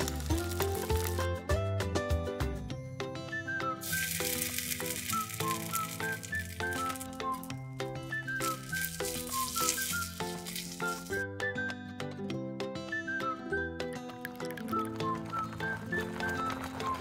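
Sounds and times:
background music melody: 0:00.0 - 0:17.0
sizzling in a wok: 0:03.8 - 0:07.5, 0:08.4 - 0:11.2.

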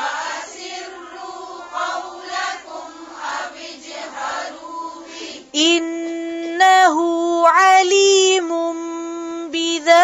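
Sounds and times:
woman reciting melodically: 0:00.0 - 0:10.0.

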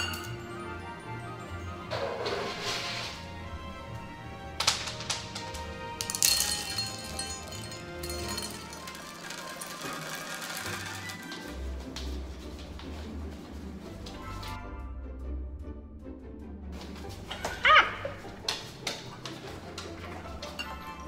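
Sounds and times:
background music: 0:00.0 - 0:21.0
kibble scattering on countertop: 0:04.6 - 0:11.4
dry kibble rattling into metal cup: 0:06.0 - 0:11.5.

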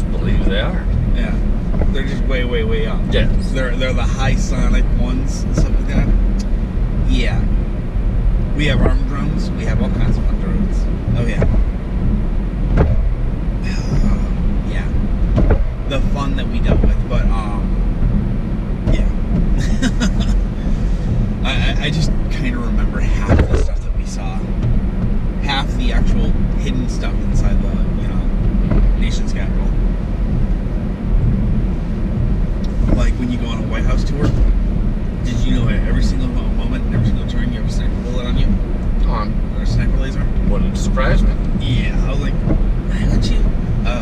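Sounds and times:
people talking: 0:00.0 - 0:07.5, 0:08.6 - 0:11.6, 0:13.6 - 0:15.0, 0:15.9 - 0:17.7, 0:18.9 - 0:24.5, 0:25.4 - 0:28.3, 0:29.0 - 0:29.7, 0:32.7 - 0:34.5, 0:35.2 - 0:44.0
car road and engine rumble: 0:00.0 - 0:44.0.

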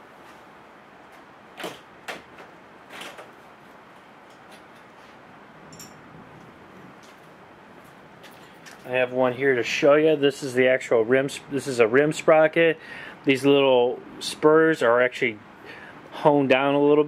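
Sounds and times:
parts knocking and rustling: 0:05.7 - 0:06.1.

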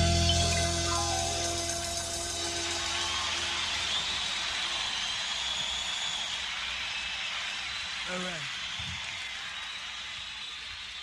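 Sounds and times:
cymbals ringing: 0:00.0 - 0:03.9.

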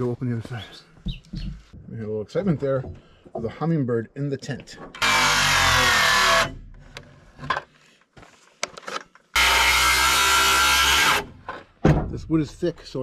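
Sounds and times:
saw blade spinning down: 0:05.0 - 0:06.5, 0:09.4 - 0:11.3
circular saw cutting wood: 0:05.0 - 0:06.6, 0:09.3 - 0:11.4.

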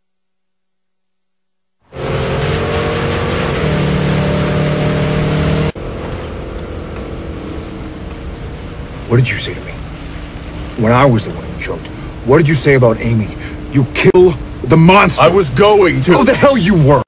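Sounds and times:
road noise: 0:01.8 - 0:17.0
car engine running: 0:01.9 - 0:17.0.

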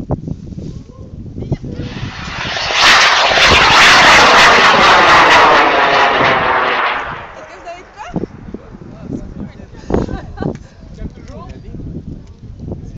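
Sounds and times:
rocket motor roaring: 0:01.7 - 0:08.9.

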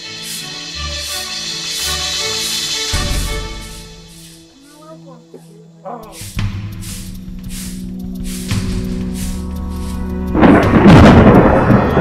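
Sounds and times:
thunderclap rumbling: 0:08.6 - 0:12.0.

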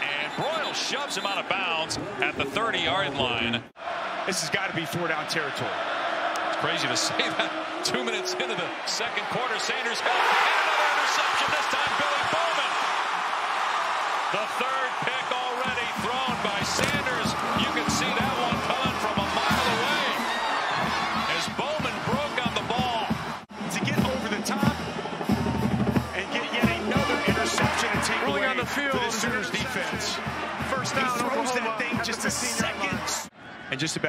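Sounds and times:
stadium crowd cheering: 0:00.0 - 0:34.0
marching band drums: 0:15.6 - 0:20.2, 0:20.8 - 0:33.2.

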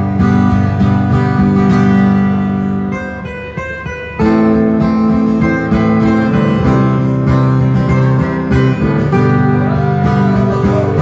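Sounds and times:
acoustic guitars playing chords: 0:00.0 - 0:11.0.

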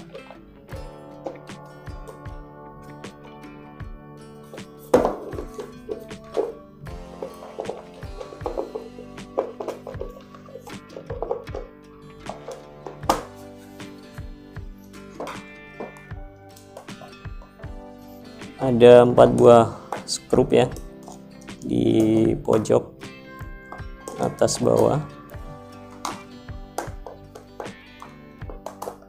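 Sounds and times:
background music: 0:00.0 - 0:29.0.

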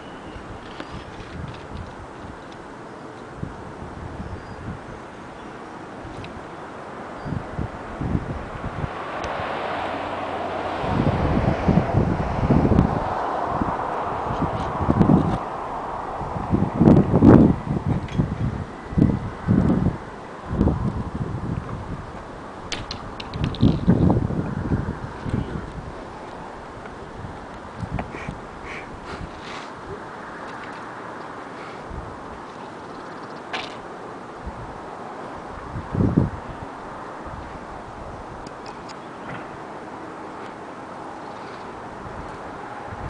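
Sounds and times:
wind buffeting microphone: 0:00.0 - 0:02.7, 0:03.3 - 0:05.1, 0:06.0 - 0:31.2, 0:31.8 - 0:33.3, 0:34.4 - 0:39.8, 0:40.9 - 0:43.0
outdoor background hiss: 0:00.0 - 0:43.0.

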